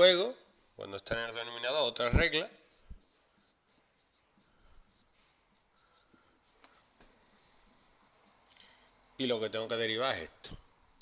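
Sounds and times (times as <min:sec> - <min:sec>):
marker writing on whiteboard: 0:00.0 - 0:11.0.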